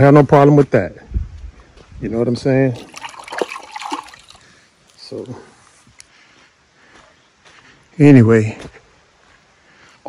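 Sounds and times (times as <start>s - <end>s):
water splashing and trickling: 2.7s - 5.8s.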